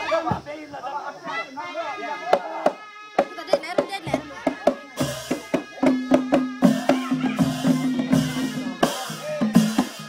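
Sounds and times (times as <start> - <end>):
group voices: 0.0 - 10.0
hand drum strikes: 2.4 - 10.0.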